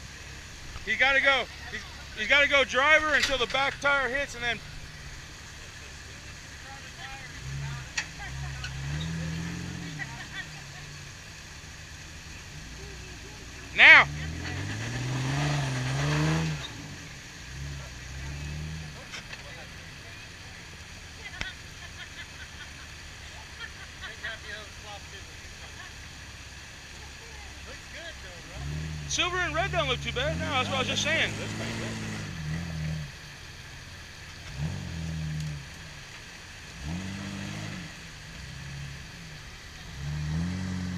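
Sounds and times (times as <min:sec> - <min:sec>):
engine revving: 0:00.0 - 0:40.9
tires on rock: 0:00.0 - 0:40.9.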